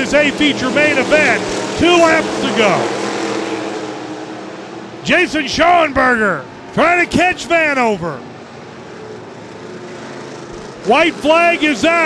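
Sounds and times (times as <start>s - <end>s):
man's voice: 0.0s - 2.9s, 5.0s - 8.2s, 10.8s - 12.0s
distant race car engines droning: 0.0s - 12.0s.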